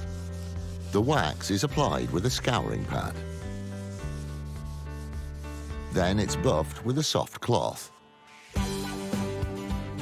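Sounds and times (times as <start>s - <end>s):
scouring pad rubbing wood: 0.0s - 6.8s.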